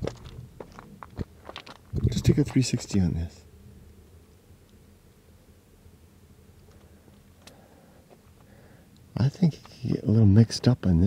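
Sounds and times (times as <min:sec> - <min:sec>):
boots crunching on loose rock: 0:00.0 - 0:03.0.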